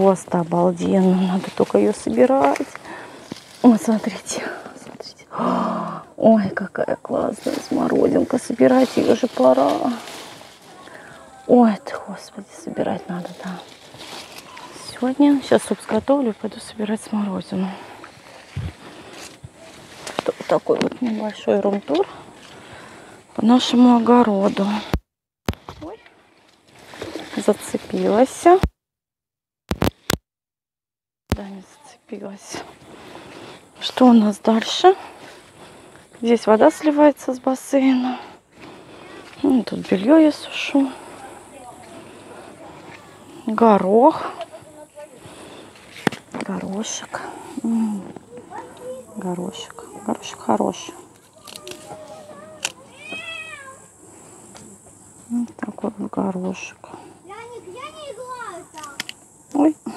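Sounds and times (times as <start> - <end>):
faint outdoor background: 0.0 - 28.8, 31.2 - 59.9
recording splice clicks: 29.7 - 30.2
cat meowing: 53.0 - 53.8.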